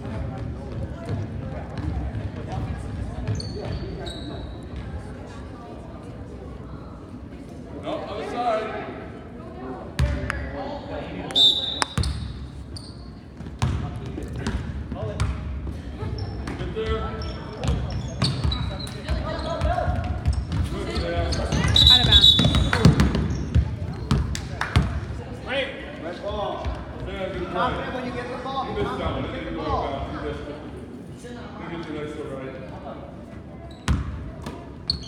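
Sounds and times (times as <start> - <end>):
basketball bouncing on gym floor: 13.4 - 15.5, 16.2 - 25.0, 33.9 - 35.0
people talking and calling out: 15.7 - 35.0.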